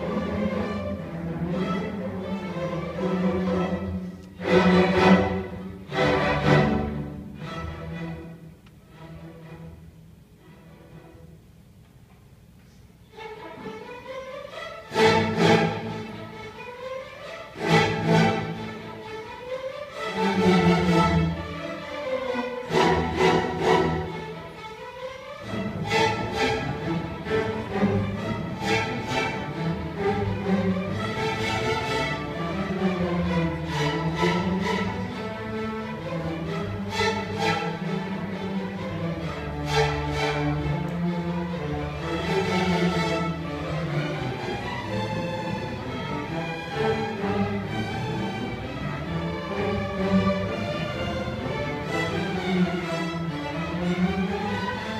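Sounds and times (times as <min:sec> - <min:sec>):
string orchestra playing: 0:00.0 - 0:11.7, 0:12.9 - 0:54.9.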